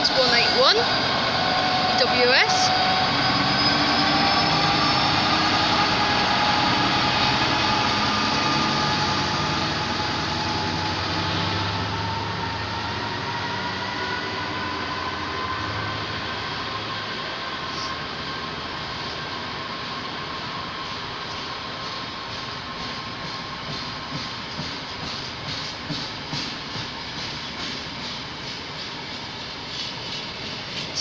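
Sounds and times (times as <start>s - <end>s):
diesel locomotive engine hum: 0.0s - 31.0s.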